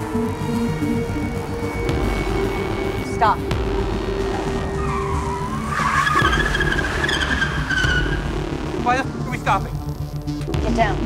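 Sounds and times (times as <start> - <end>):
car tyres squealing: 0.0 - 9.9.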